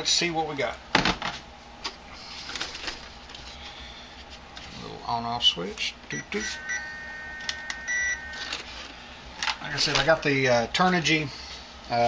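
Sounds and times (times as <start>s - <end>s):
electronic beep: 6.1s - 8.9s.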